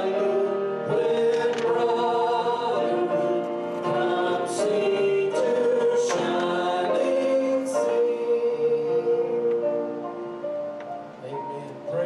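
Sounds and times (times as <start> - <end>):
group singing worship song: 0.0 - 10.1.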